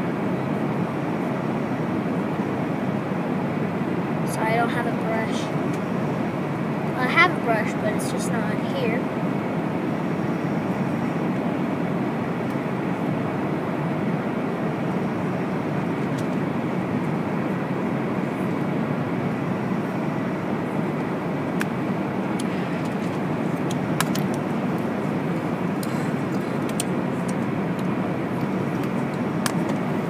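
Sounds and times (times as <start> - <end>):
airliner cabin noise: 0.0 - 30.0.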